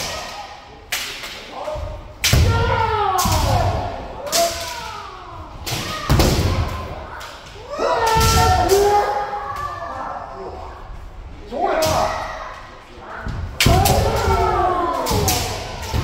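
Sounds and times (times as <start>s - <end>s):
fencers shouting: 0.0s - 10.7s, 11.4s - 16.0s.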